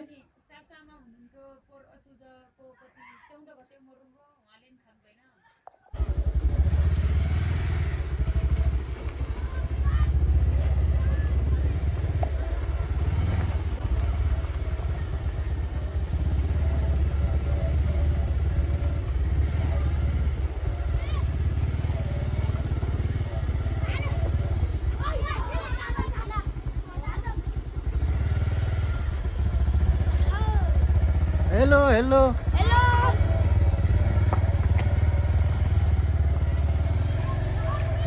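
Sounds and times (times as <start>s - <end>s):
faint voices: 8.2s - 27.6s, 28.9s - 38.0s.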